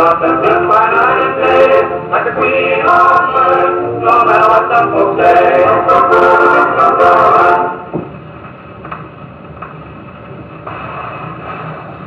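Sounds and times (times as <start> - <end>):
record chord: 0.0 - 8.2
record surface hiss: 0.0 - 12.0.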